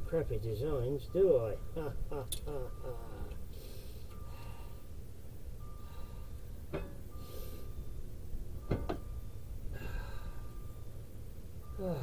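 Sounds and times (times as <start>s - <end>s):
low steady rumble: 0.0s - 12.0s
thin high tone: 0.2s - 12.0s.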